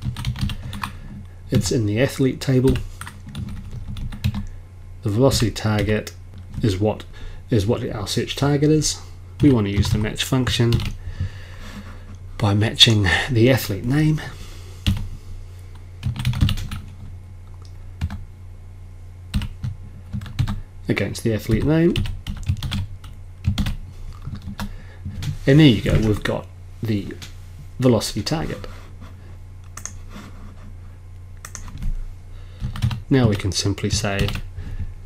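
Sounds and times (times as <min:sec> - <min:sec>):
computer keyboard typing: 0:00.0 - 0:01.0, 0:02.6 - 0:04.5, 0:09.4 - 0:10.1, 0:10.7 - 0:11.0, 0:16.0 - 0:17.0, 0:18.0 - 0:18.2, 0:19.3 - 0:20.6, 0:21.5 - 0:25.4, 0:29.8 - 0:30.0, 0:31.4 - 0:31.9, 0:32.6 - 0:34.5
steady low hum: 0:00.0 - 0:35.0.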